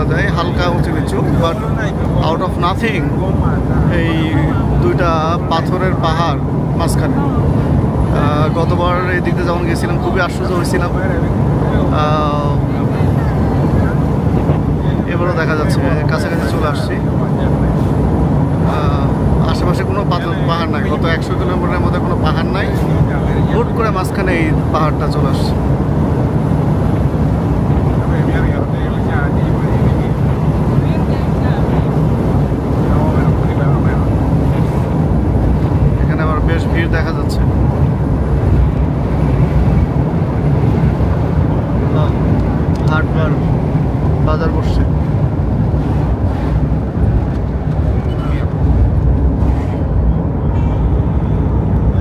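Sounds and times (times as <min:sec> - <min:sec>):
wind on microphone: 0:00.0 - 0:21.5, 0:22.2 - 0:52.0
vehicle road and engine rumble: 0:00.0 - 0:52.0.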